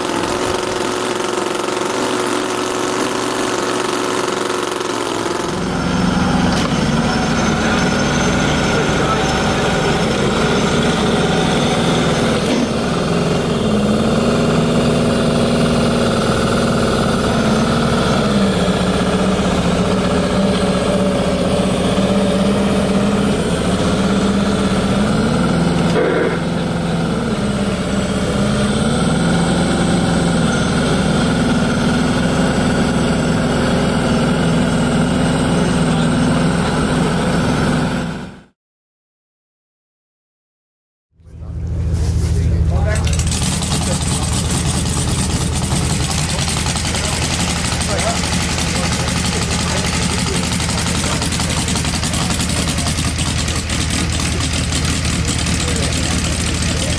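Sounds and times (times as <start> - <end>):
miniature engine running: 0.0 - 26.4, 42.8 - 56.9.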